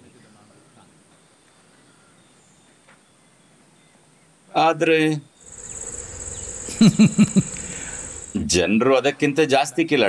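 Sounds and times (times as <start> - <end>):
crickets chirping: 5.4 - 8.6
man laughing: 6.7 - 7.5.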